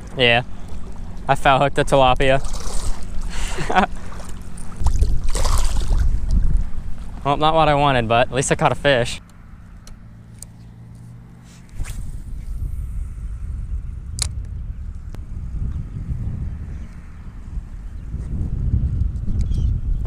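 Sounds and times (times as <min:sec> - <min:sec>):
wind buffeting microphone: 0:00.0 - 0:08.8, 0:11.6 - 0:20.0
sharp clicks: 0:14.2 - 0:14.5.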